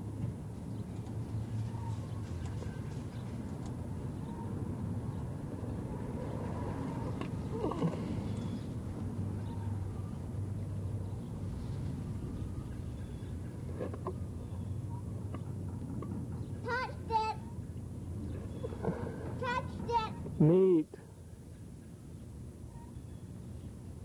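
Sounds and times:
low background rumble and hiss: 6.8 - 24.0.

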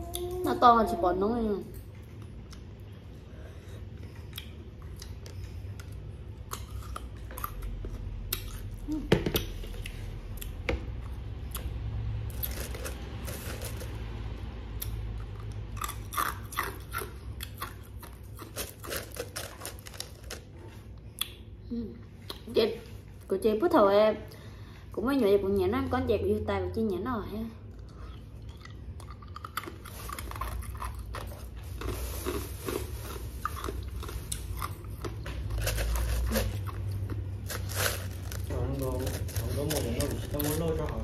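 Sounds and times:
ice cubes crunching: 12.3 - 13.9, 18.4 - 20.5, 29.6 - 41.0.

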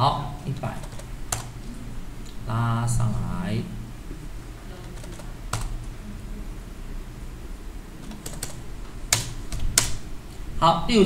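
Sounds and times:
keyboard keystrokes: 8.0 - 10.0.

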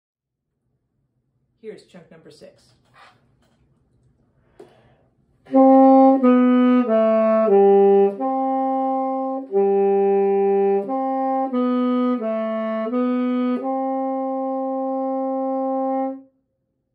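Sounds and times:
tenor saxophone playing a scale: 5.5 - 16.3.

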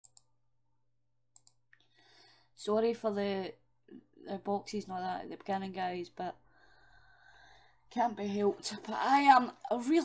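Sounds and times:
faint computer mouse clicks: 0.0 - 0.3, 1.3 - 1.9.

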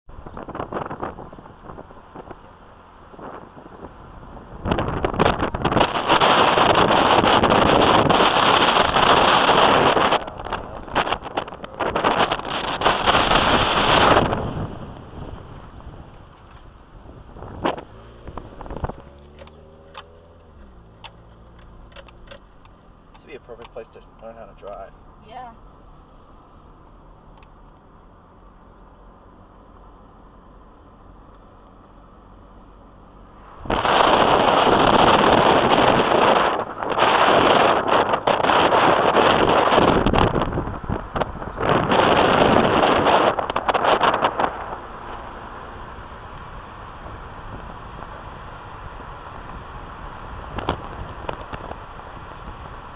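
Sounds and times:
wind gusts on microphone: 0.1 - 23.8, 33.4 - 52.9
car engine running: 0.1 - 52.9.

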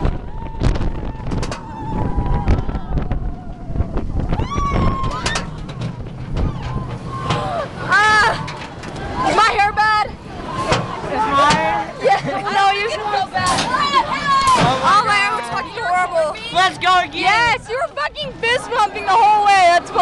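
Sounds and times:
riders screaming and whooping: 0.0 - 9.4
wind rushing on microphone: 0.0 - 12.4
roller coaster rumbling on track: 0.0 - 20.0.

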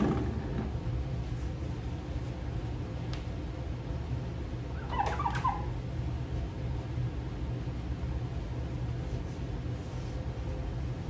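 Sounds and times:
steady low hum: 0.0 - 11.0
cloth squeaking on glass: 4.8 - 5.7.

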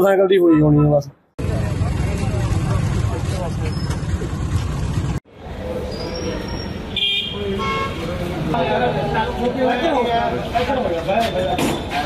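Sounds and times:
people talking: 0.0 - 4.0, 7.3 - 12.0
street noise: 0.0 - 12.0
vehicle horn: 6.9 - 8.2.

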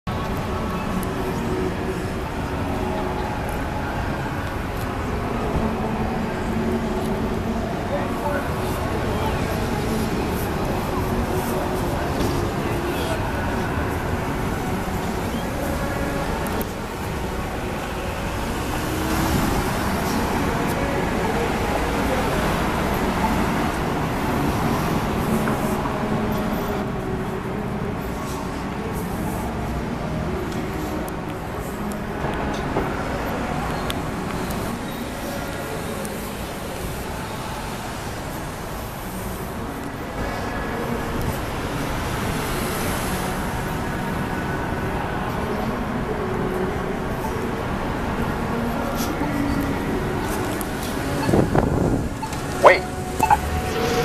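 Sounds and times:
passing cars rumble: 0.1 - 54.0.

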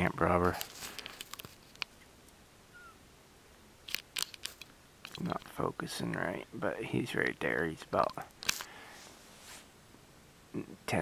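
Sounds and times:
faint bird chirp: 2.0 - 3.0.

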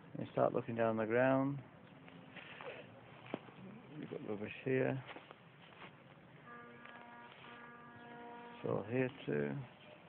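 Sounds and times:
faint steady buzzing hum: 5.6 - 10.0.

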